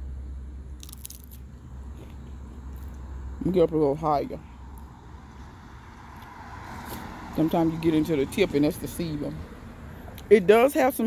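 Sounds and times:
steady low rumble: 0.0s - 5.8s
crunching bites: 0.8s - 3.0s.

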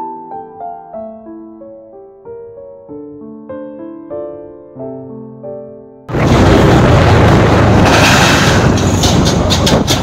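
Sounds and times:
road and wind noise: 6.1s - 10.0s
wheels clanking over steel plates: 6.1s - 10.0s.

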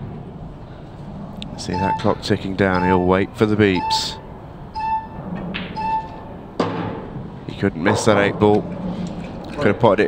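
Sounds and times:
electronic clock beeping: 1.8s - 3.1s, 3.8s - 5.2s, 5.8s - 6.3s.

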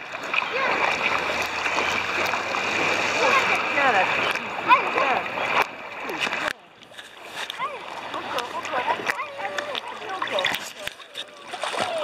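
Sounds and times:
water splashing and sloshing: 0.0s - 12.0s
voices in background: 2.8s - 12.0s.

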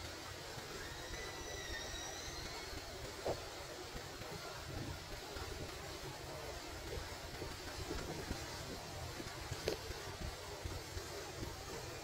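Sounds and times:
flowing spring water: 0.0s - 12.0s.

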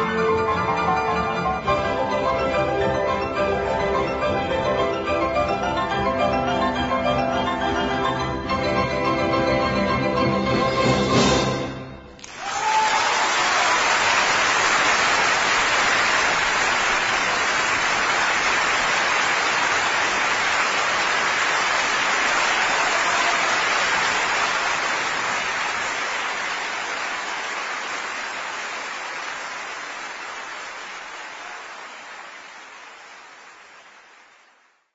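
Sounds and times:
audience applauding: 12.2s - 34.9s.

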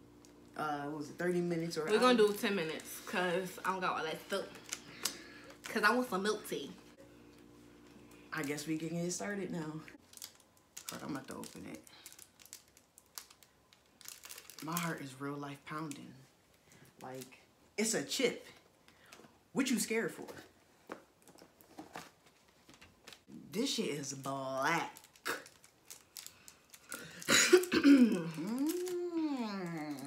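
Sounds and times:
packaging crinkling: 4.3s - 6.2s, 10.0s - 15.2s, 24.2s - 30.0s
light clicks of packaging: 10.0s - 14.9s, 25.0s - 27.3s, 28.4s - 30.0s
person coughing: 27.0s - 28.6s.

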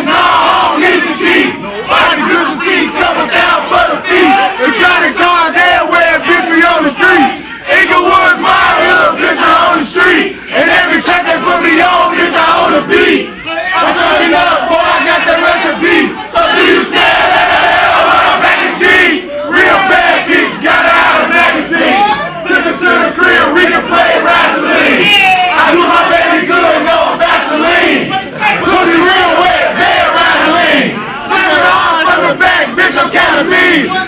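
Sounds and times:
large crowd shouting: 0.0s - 34.0s.

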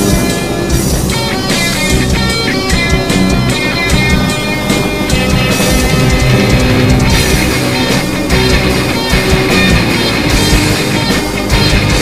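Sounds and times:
heavy drum beat: 0.0s - 12.0s
loud rock music: 0.0s - 12.0s.

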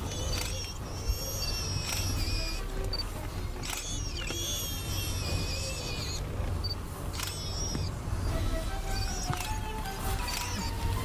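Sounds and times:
warthog squealing: 0.0s - 2.7s, 3.7s - 6.3s.

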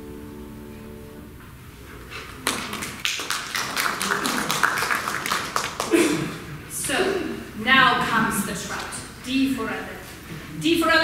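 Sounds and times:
audience applauding: 2.2s - 6.5s.

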